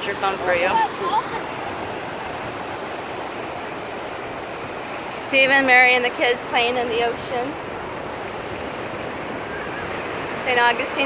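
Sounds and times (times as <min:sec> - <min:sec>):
ocean waves breaking on beach: 0:00.0 - 0:11.0.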